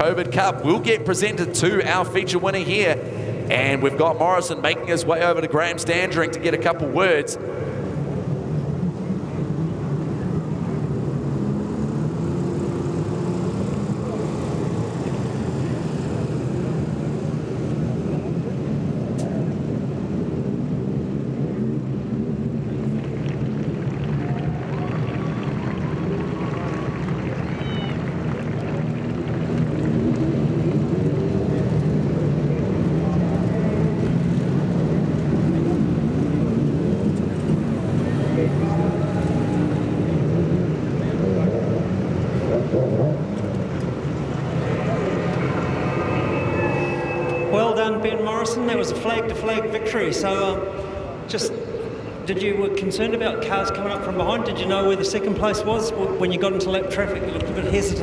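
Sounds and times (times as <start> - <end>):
race car engines running: 0.0 - 58.0.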